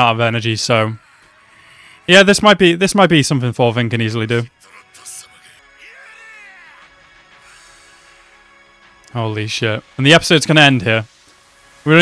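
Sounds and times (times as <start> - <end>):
background music with held notes: 0.0 - 12.0
man's drawn-out shout: 4.4 - 7.0.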